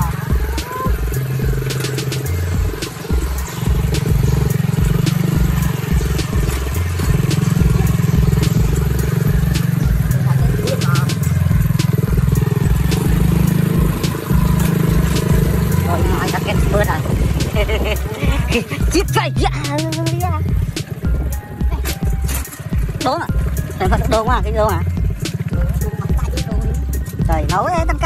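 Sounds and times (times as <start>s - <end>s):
small motorcycle engine running: 0.0s - 28.0s.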